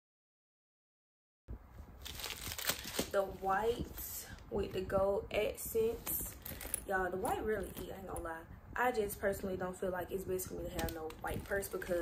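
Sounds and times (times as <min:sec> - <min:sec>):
plastic wrapping crinkling: 0:02.0 - 0:03.4, 0:10.7 - 0:12.0.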